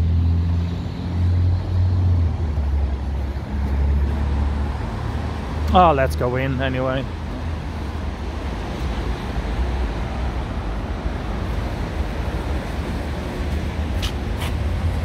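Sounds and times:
street traffic rumble: 0.0s - 15.0s.

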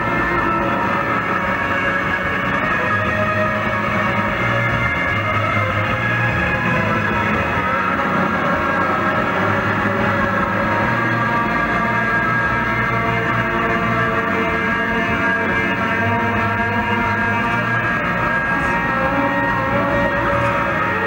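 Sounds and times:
live rock band playing: 0.0s - 21.0s.

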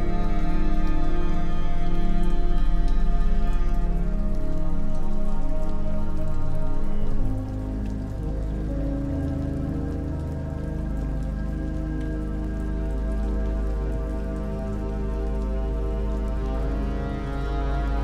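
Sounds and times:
ambient music with held chords: 0.0s - 18.0s
rain falling on water: 0.0s - 18.0s.

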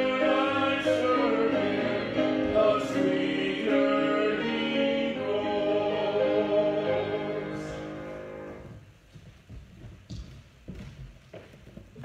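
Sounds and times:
choir singing a hymn: 0.0s - 8.8s.

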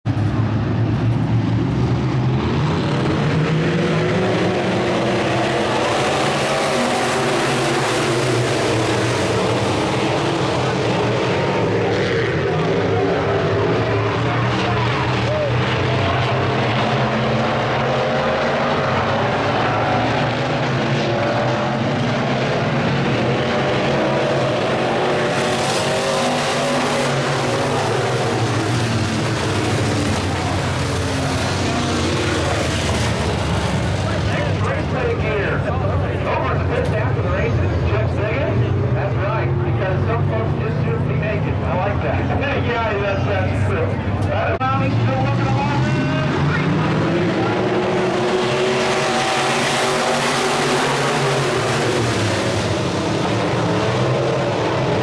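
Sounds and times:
race car engines: 0.0s - 55.0s.

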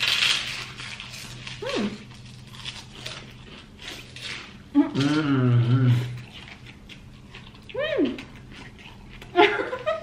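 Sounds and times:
woman humming with mouth full: 4.8s - 6.2s.

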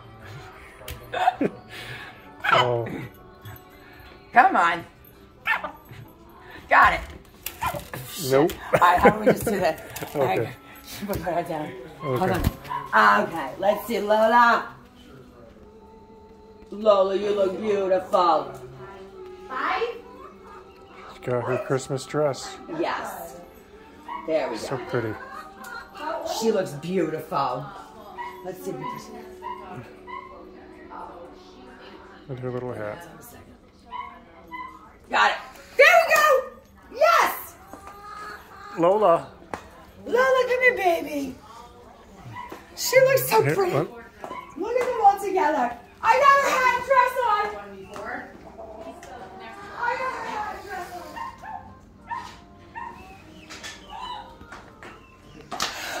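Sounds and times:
hens clucking: 24.1s - 26.5s, 37.6s - 39.3s.

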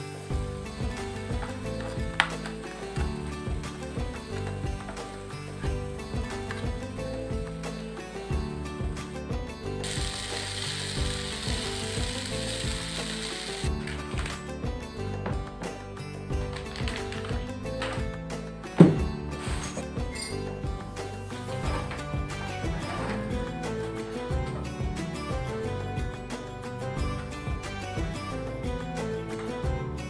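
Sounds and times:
music with clicking beat: 0.3s - 30.0s
vegetables sizzling in a frying pan: 9.8s - 14.0s.

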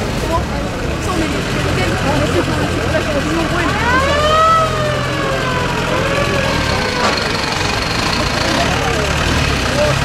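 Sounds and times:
jeep engines running: 0.0s - 10.0s
slow wailing tone: 3.8s - 7.9s.

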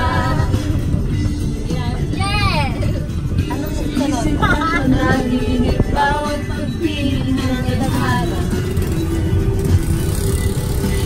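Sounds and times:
voices: 0.0s - 9.1s
music: 0.0s - 11.0s
vehicle rumble in motion: 0.0s - 11.0s
wind on microphone: 0.0s - 11.0s.

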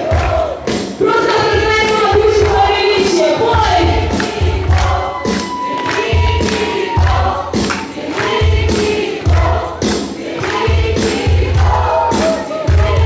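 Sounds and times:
live band playing worship song: 0.0s - 13.0s
voices singing: 0.0s - 13.0s.

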